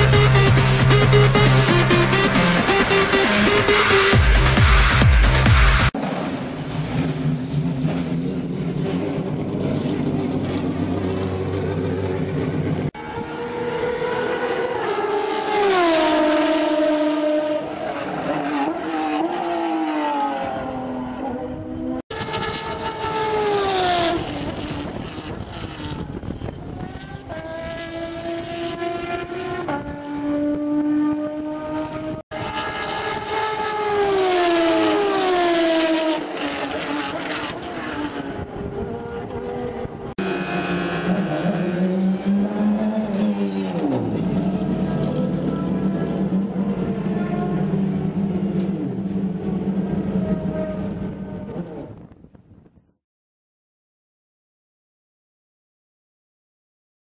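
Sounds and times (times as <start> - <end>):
race car engines at high revs: 5.8 - 52.0.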